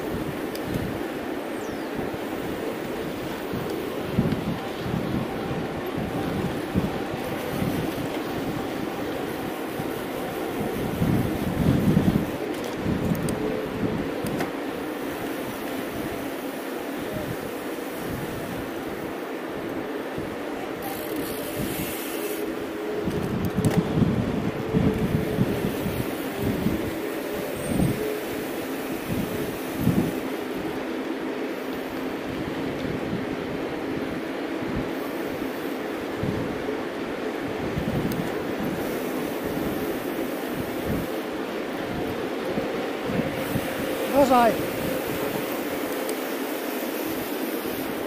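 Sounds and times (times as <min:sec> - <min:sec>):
bike tyre hum on asphalt: 0:00.0 - 0:48.0
wind buffeting microphone: 0:00.0 - 0:48.0.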